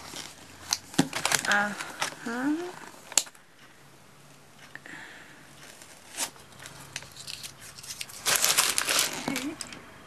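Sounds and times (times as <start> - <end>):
packaging crinkling and rustling: 0.0 - 3.4, 5.6 - 9.8.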